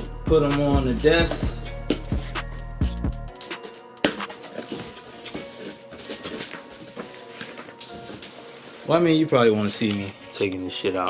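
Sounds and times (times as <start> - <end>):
faint background music: 0.0 - 11.0
packaging rustling: 4.3 - 10.2.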